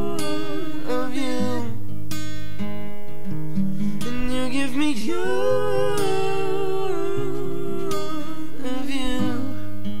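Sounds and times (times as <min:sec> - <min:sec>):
singers holding a note: 0:00.0 - 0:01.8, 0:04.6 - 0:09.6
acoustic guitar notes: 0:00.0 - 0:10.0.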